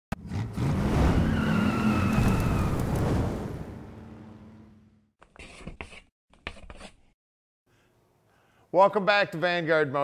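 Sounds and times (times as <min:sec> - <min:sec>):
tire squeal: 0:00.6 - 0:03.0.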